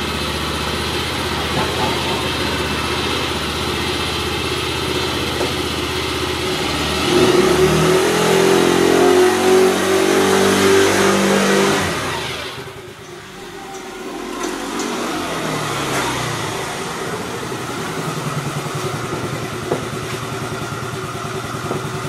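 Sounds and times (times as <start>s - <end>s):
scooter engine revving: 0.0s - 22.0s.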